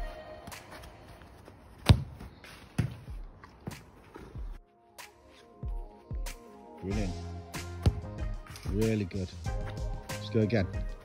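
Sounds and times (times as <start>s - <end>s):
football kicked thuds: 1.8s - 3.8s, 7.8s - 8.2s.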